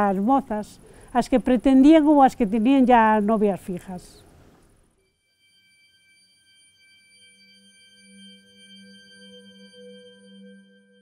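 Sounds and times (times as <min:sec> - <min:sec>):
ringing bell-like music tones: 0:05.0 - 0:11.0.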